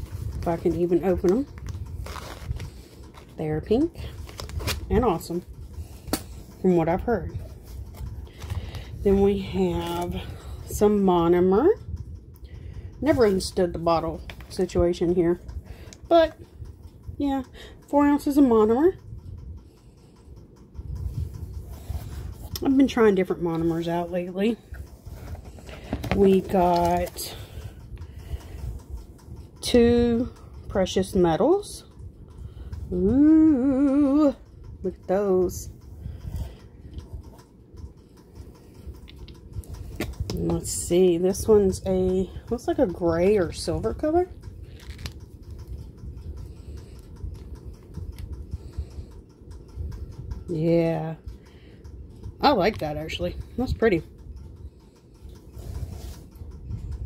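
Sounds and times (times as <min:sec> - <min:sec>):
low uneven handling rumble: 0:00.0 - 0:57.0.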